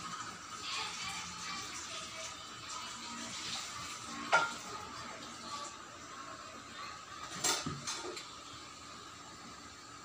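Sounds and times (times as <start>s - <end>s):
tableware clink: 4.3s - 4.6s.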